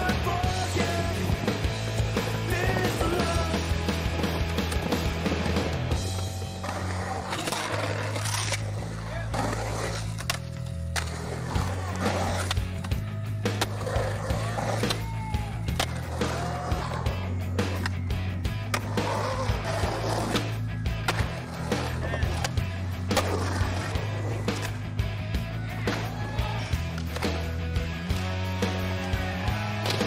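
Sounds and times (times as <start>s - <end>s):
music with bass line: 0.0s - 30.0s
skateboard wheels rolling on concrete: 0.0s - 30.0s.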